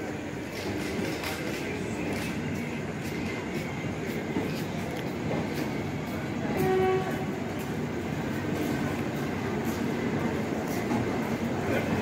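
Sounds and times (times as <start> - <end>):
train coaches rumbling past: 0.0 - 12.0
short train horn blast: 6.5 - 7.4.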